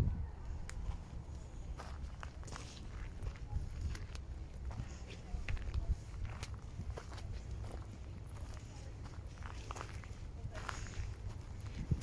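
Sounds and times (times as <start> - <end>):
steady low rumble: 0.0 - 12.0
footsteps crunching on dry dirt: 0.6 - 12.0.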